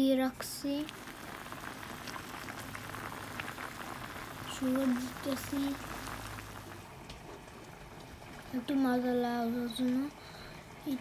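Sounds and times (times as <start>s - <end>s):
gravy simmering in a pan: 0.0s - 11.0s
small bubbles popping: 0.7s - 7.2s.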